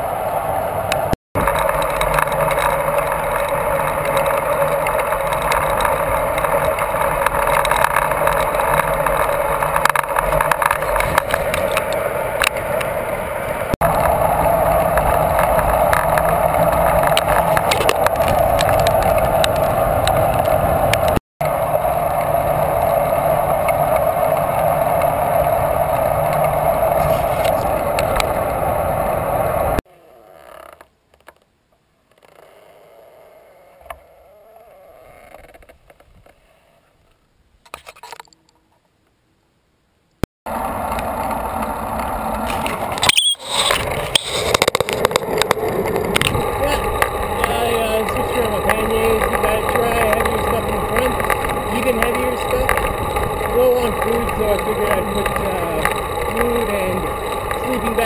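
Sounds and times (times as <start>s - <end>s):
bicycle road and wind noise: 0.0s - 58.0s.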